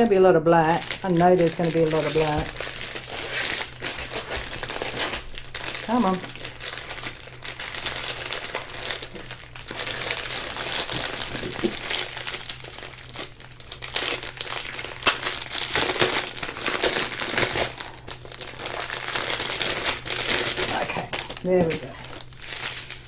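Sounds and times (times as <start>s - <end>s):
plastic sleeve crinkling: 0.6s - 23.0s.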